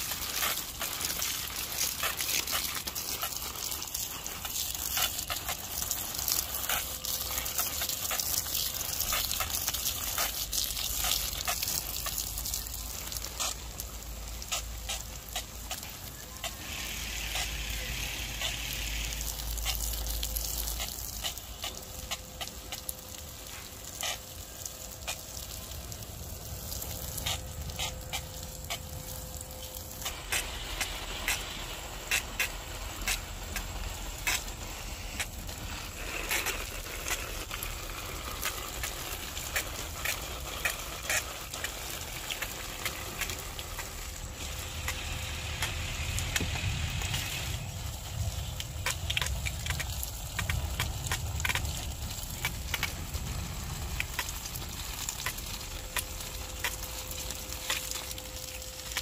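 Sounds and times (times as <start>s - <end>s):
light rain falling: 0.0s - 59.0s
raindrop clicks: 0.0s - 59.0s.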